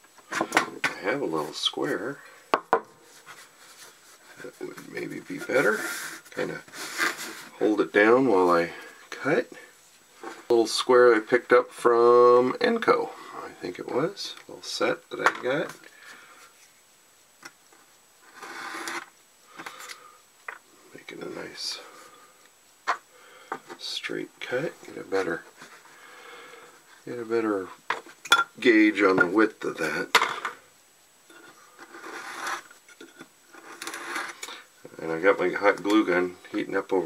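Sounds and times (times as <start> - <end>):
knife scraping through foam: 32.0 - 32.7.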